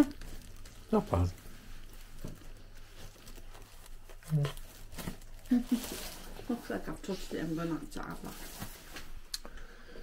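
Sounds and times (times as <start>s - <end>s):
plastic bag rustling: 0.0s - 9.3s.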